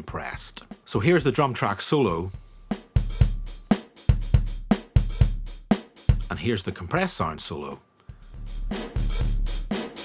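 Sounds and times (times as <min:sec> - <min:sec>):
solo drum break: 0:00.0 - 0:07.4, 0:08.1 - 0:10.0.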